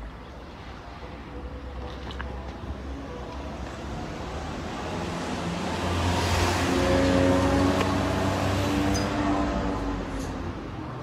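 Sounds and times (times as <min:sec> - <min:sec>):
motor vehicle passing: 0:04.4 - 0:10.3.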